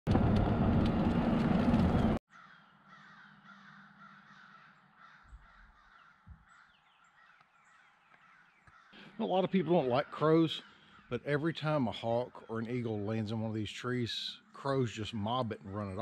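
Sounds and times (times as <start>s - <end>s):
crows cawing: 2.3s - 13.3s.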